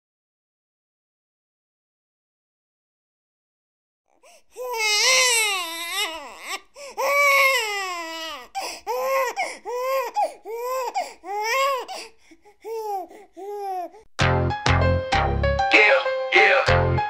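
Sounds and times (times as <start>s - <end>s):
baby crying: 4.3s - 14.1s.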